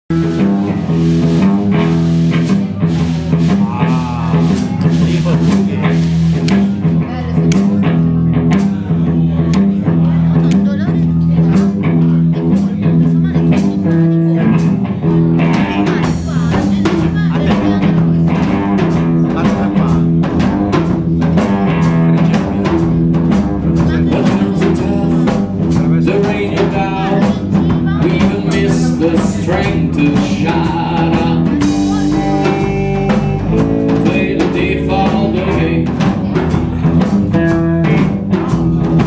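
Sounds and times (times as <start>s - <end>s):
walking bass line: 0.0s - 39.0s
drum and cymbal strikes: 0.1s - 39.0s
electric guitar: 0.1s - 39.0s.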